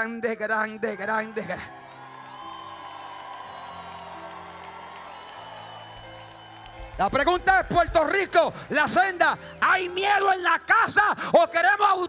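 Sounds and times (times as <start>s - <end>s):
soft background music chords: 0.0s - 12.0s.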